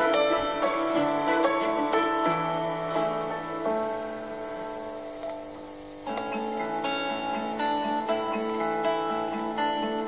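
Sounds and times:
acoustic guitar plucked notes: 0.0 - 10.0.

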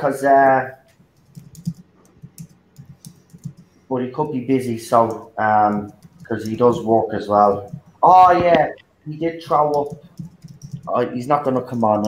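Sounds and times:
computer keyboard typing: 0.9 - 12.0.

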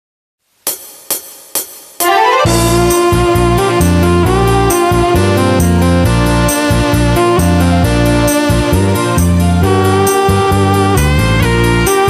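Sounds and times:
drum machine cymbal ticks: 0.5 - 3.9.

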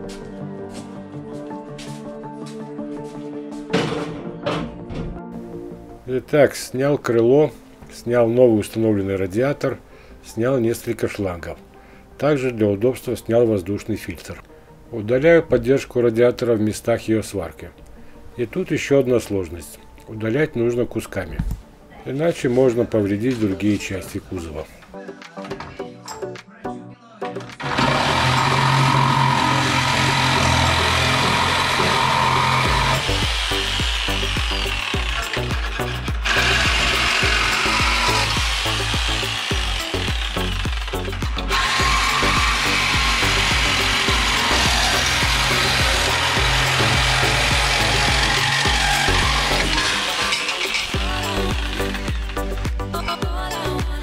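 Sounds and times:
background music: 0.0 - 54.0
reciprocating saw cutting metal: 27.6 - 53.1.

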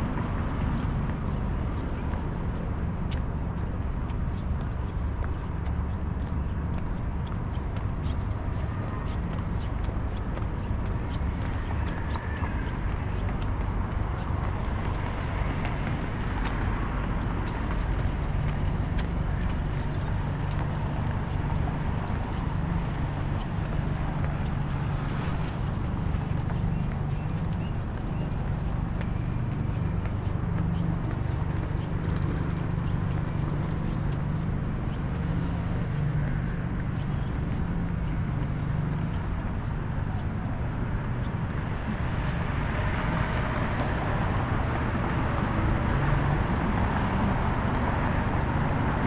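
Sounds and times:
low rumble of road traffic: 0.0 - 49.0
footsteps on paving: 0.1 - 49.0.

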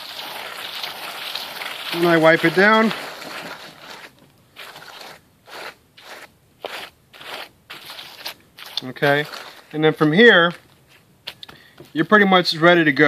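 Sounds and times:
hand scraping potting mix: 0.0 - 13.0.

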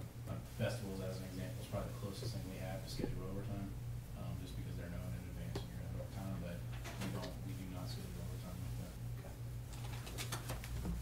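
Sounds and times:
low hum of room noise: 0.0 - 11.0.

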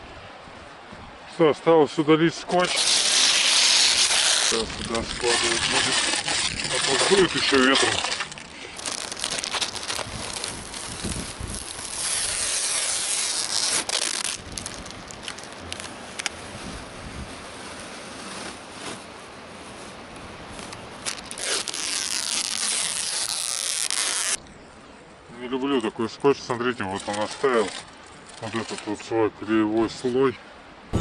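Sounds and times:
masking tape and film peeled off: 2.5 - 16.4, 20.6 - 24.4, 26.9 - 29.0
plastic crumpling and rustling: 2.5 - 16.6, 17.2 - 24.4, 26.8 - 29.0.

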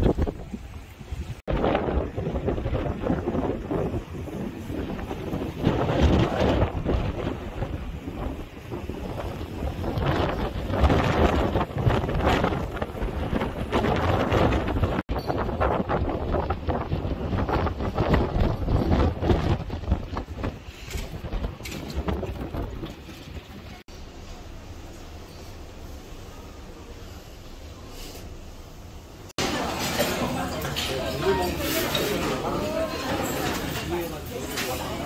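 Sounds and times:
wind buffeting microphone: 0.0 - 23.9.

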